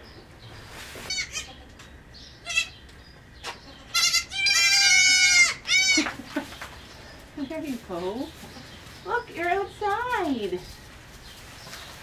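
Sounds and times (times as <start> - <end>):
baby goats bleating: 1.1 - 1.7, 2.4 - 2.8, 3.5 - 6.2.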